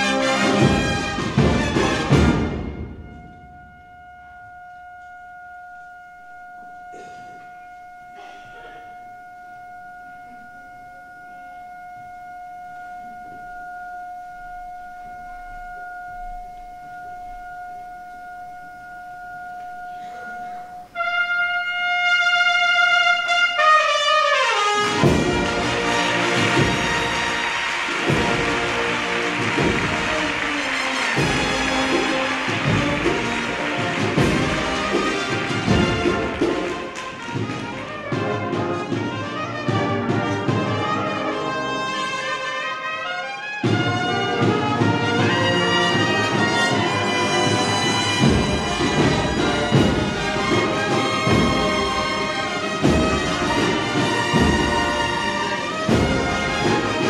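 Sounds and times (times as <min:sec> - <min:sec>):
brass band playing: 0:00.0 - 0:09.0, 0:19.6 - 0:57.0
percussion beats: 0:00.0 - 0:57.0.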